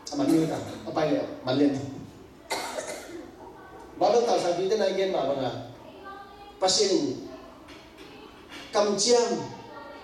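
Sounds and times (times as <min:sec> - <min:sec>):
person coughing: 0:02.5 - 0:03.2.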